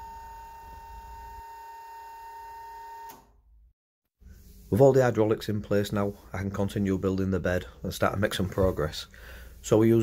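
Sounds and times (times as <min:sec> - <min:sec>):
hydraulic pump whining: 0:00.0 - 0:03.3.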